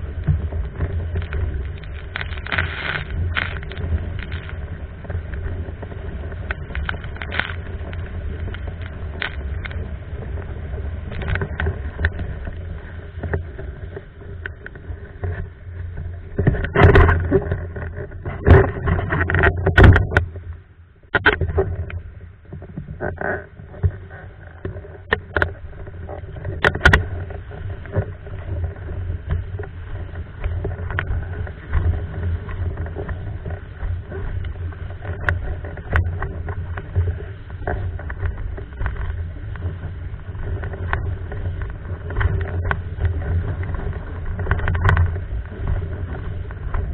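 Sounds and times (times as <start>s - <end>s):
hull slapping waves: 0.0s - 46.9s
windsurf board planing over water: 0.0s - 46.9s.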